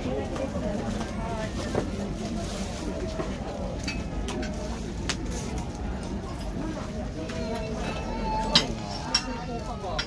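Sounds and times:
shoppers chattering: 0:00.0 - 0:10.0.

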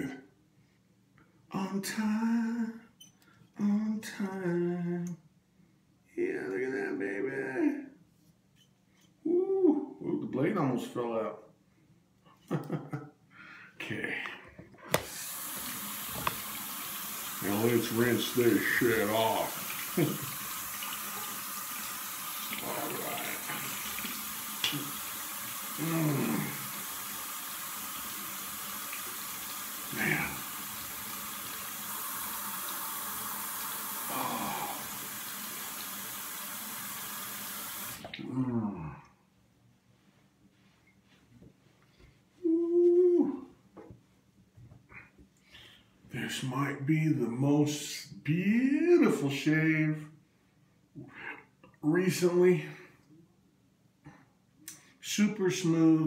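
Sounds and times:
man humming mmm: 0:09.2 - 0:10.0, 0:25.8 - 0:26.7, 0:34.0 - 0:35.0, 0:42.4 - 0:43.6
tap running into sink: 0:14.9 - 0:16.8.

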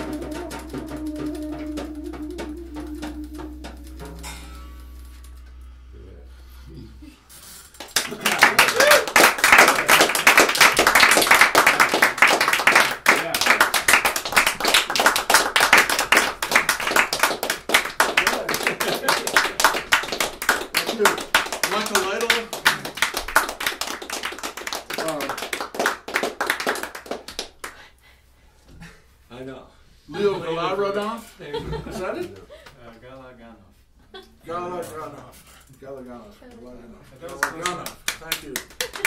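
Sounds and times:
people clapping: 0:07.7 - 0:28.0, 0:37.1 - 0:39.0.

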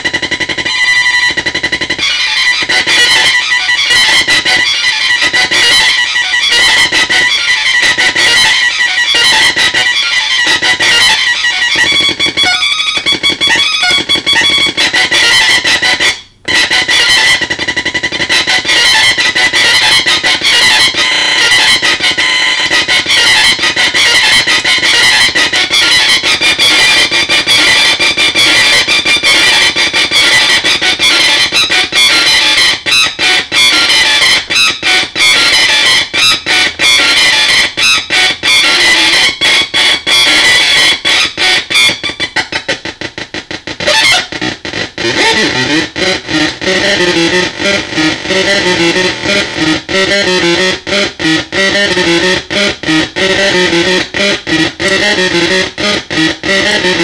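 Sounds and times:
distorted buzzing synth drone: 0:00.0 - 0:57.0.

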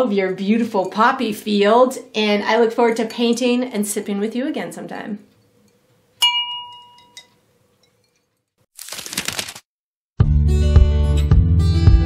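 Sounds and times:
bright ding: 0:06.2 - 0:07.4.

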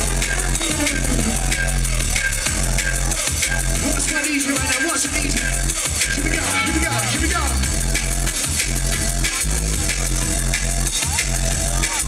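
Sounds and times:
drum and bass music: 0:00.0 - 0:12.0.

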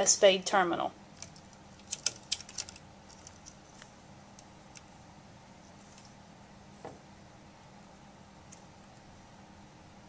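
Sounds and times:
wires clicking against plastic lid: 0:01.2 - 0:03.6.

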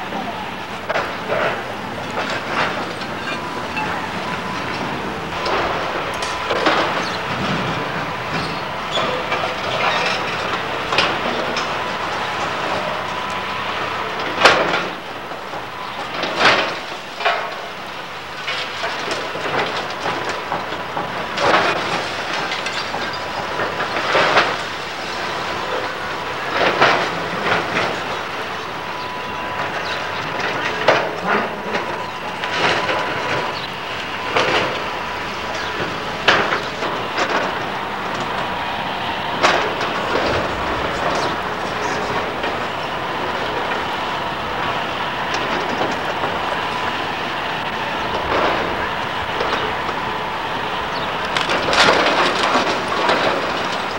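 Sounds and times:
excavator running: 0:00.0 - 0:53.9
debris crashing and clanking: 0:00.8 - 0:13.0, 0:18.4 - 0:38.5, 0:39.3 - 0:53.9.

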